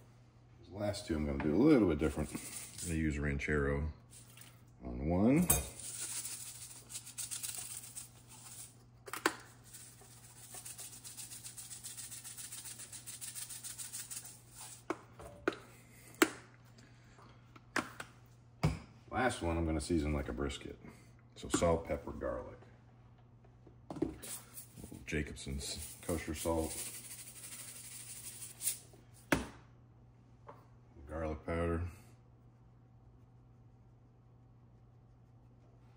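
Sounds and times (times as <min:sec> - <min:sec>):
seasoning granules rattling in shaker: 0:02.0 - 0:03.0, 0:04.1 - 0:04.5, 0:05.7 - 0:14.9, 0:24.2 - 0:28.9
salt grains pattering: 0:02.0 - 0:03.1, 0:05.7 - 0:08.8, 0:09.4 - 0:14.9, 0:24.2 - 0:28.8.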